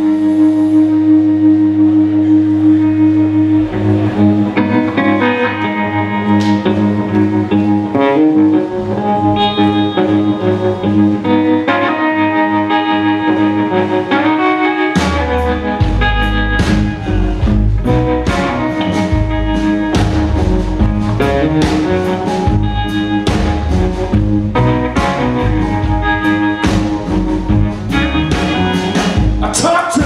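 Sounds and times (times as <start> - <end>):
electric guitar lines: 0.0 - 30.0.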